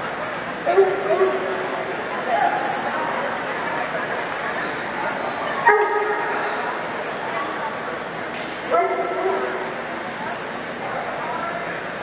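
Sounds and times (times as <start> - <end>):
murmur of voices: 0.0 - 12.0
dog barking: 5.6 - 6.2, 8.7 - 9.5.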